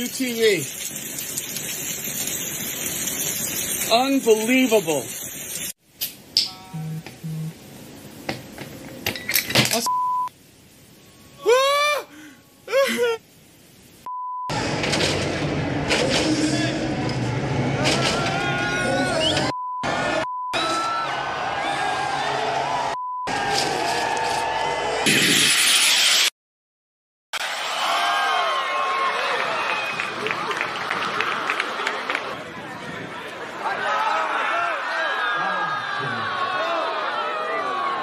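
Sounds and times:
rain on cardboard box: 0.0s - 5.8s
rain on stone steps: 0.0s - 5.8s
spectators shouting: 16.4s - 25.1s, 27.4s - 38.0s.

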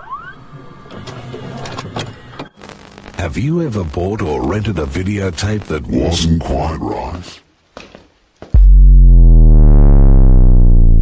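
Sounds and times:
vcr motor whine and whirr: 0.0s - 2.6s.

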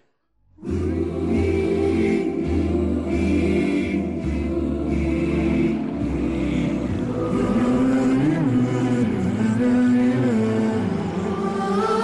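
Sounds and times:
choir singing: 0.6s - 12.0s
low steady drone: 0.6s - 12.0s.

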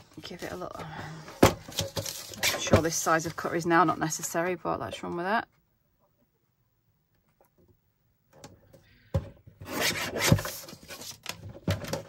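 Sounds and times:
blade scraping through paper: 9.6s - 11.3s.

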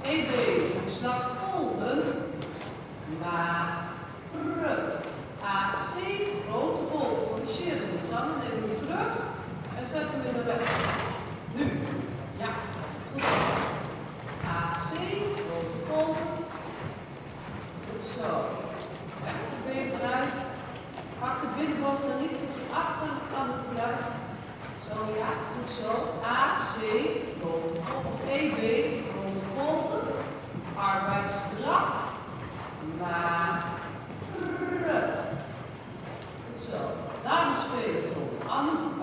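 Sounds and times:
people talking: 0.0s - 2.2s, 3.1s - 3.8s, 4.4s - 10.9s, 11.5s - 13.6s, 14.4s - 16.4s, 17.9s - 20.6s, 21.2s - 30.2s, 30.8s - 32.1s, 32.8s - 35.5s, 36.6s - 39.0s
horse hoofbeats on sand: 5.6s - 39.0s.

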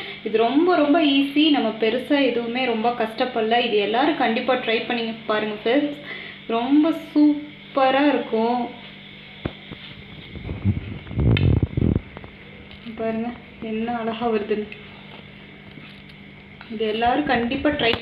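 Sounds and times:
woman talking: 0.0s - 8.9s, 12.8s - 14.8s, 16.6s - 18.0s
muffled low rustling: 9.5s - 13.1s.

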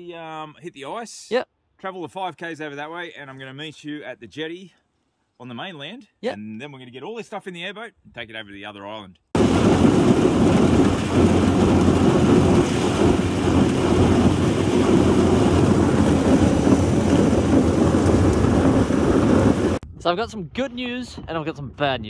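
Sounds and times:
airboat running: 9.4s - 19.8s
hull breaking through ice: 9.4s - 19.8s.

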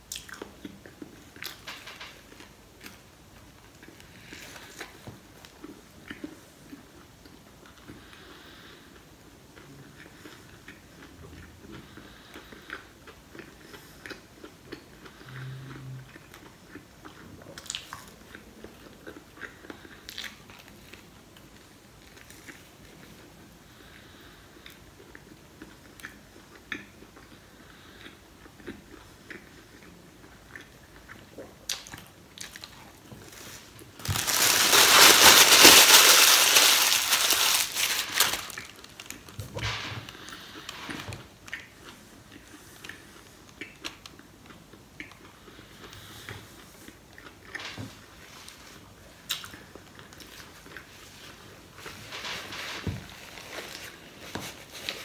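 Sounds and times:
person chewing: 0.1s - 1.6s, 9.6s - 22.6s, 24.6s - 39.3s
paper napkin rustling: 33.3s - 39.1s
paper wrapper crinkling: 33.3s - 39.3s.

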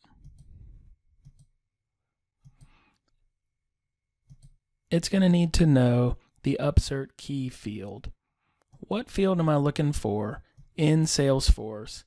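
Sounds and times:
computer mouse clicks: 0.1s - 0.5s, 1.2s - 1.5s, 2.4s - 3.1s, 4.3s - 4.6s.

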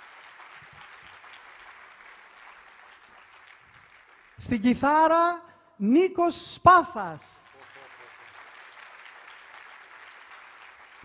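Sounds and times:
audience applauding: 0.0s - 4.7s, 7.4s - 11.0s.

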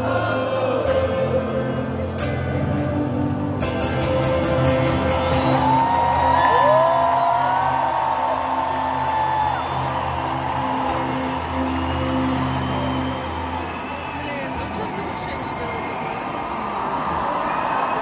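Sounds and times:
crowd noise: 0.0s - 18.0s.

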